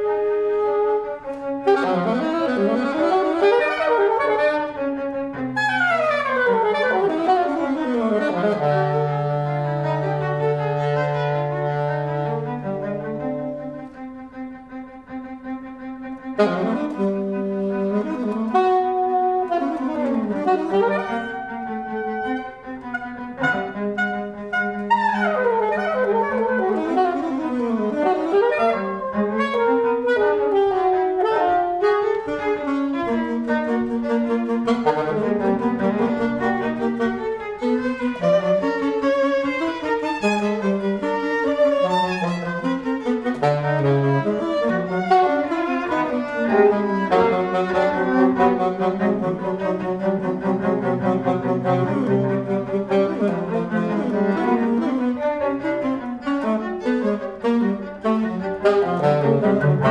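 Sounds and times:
saxophone improvising: 0.0s - 59.9s
violin improvising: 0.0s - 59.9s.

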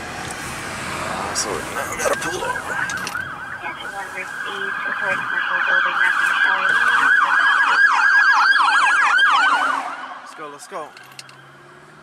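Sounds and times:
fire truck siren yelping: 1.7s - 10.4s.

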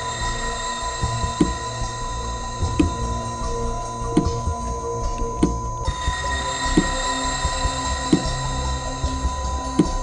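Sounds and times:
suspense music drone: 0.0s - 10.0s.

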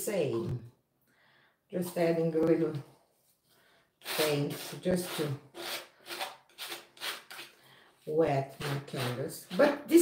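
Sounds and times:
paint brush rubbing on canvas: 4.0s - 7.5s.

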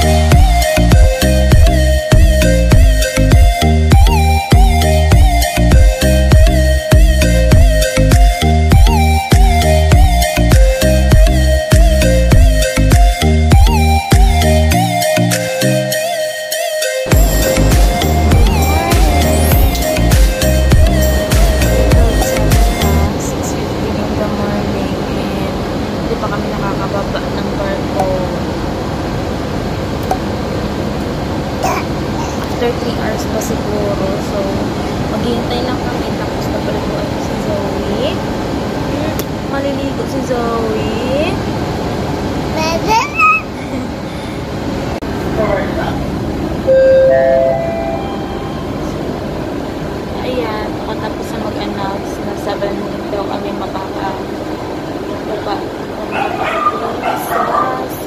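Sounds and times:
electronic chime rising notes: 17.1s - 23.1s, 46.6s - 49.3s
faint hum: 17.1s - 58.0s
machinery drone: 17.1s - 58.0s
voices: 17.2s - 28.6s, 31.6s - 41.5s, 42.5s - 43.9s, 50.1s - 58.0s.

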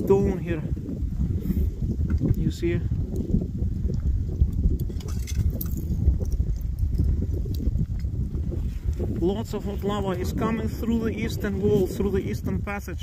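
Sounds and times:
lava crackling: 0.0s - 13.0s.

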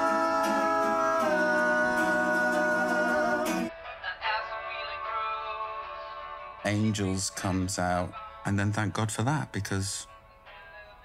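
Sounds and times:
thin-sounding music with singing: 0.0s - 11.0s.

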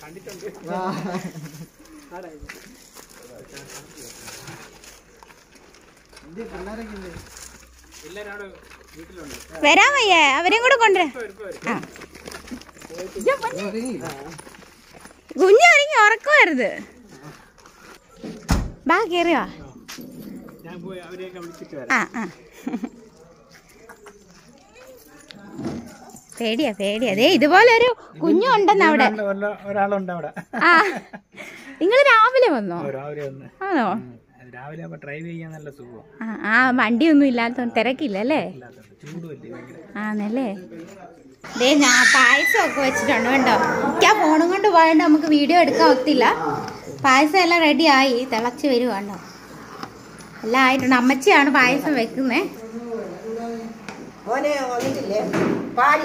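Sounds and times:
footsteps on dirt path: 0.0s - 18.5s
woman speaking: 15.4s - 16.9s, 41.5s - 49.3s, 50.4s - 52.6s.

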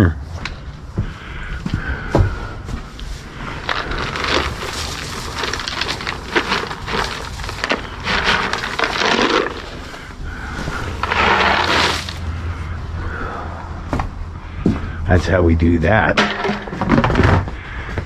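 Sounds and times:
rustling hay: 3.0s - 12.3s
treats rattling out of tub: 3.5s - 12.2s.

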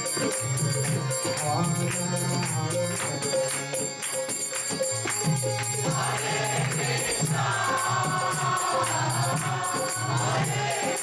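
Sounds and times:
jingling hand percussion: 0.0s - 11.0s
voices chanting together: 5.2s - 11.0s.

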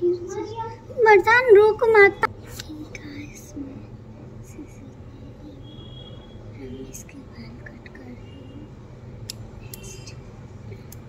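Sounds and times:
girl speaking softly: 0.0s - 5.6s.

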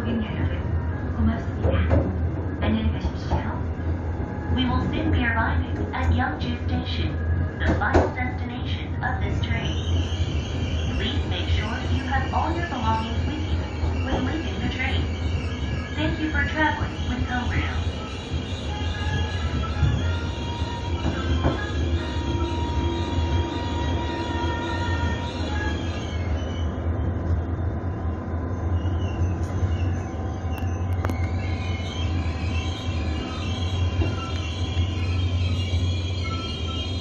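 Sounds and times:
train low drone: 0.0s - 37.0s
wheel squeal on rails: 9.7s - 26.9s, 28.7s - 37.0s.

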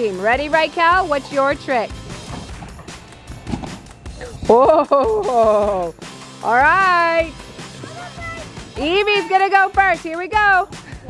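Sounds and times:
soft background music: 0.0s - 11.0s
bare feet thudding on trampoline: 2.1s - 5.9s.

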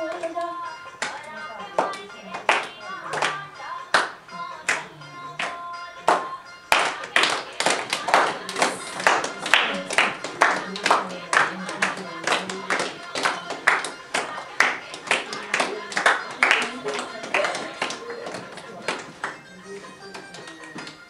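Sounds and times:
girls clapping in unison: 0.1s - 19.5s, 20.1s - 21.0s.

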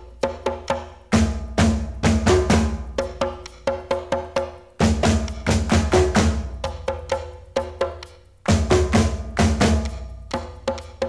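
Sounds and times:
conga drums played by hand: 0.0s - 11.0s.

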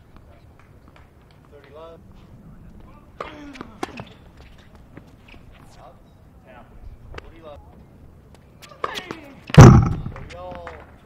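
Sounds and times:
racket hitting tennis ball: 9.6s - 10.3s.

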